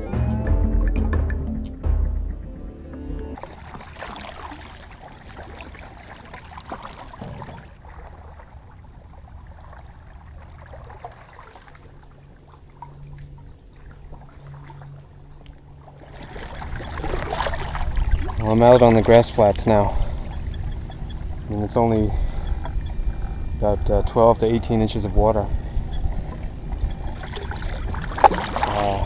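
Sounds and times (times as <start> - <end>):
music: 0.0 - 3.4
kayak paddle splashing water: 3.3 - 24.0, 24.8 - 29.0.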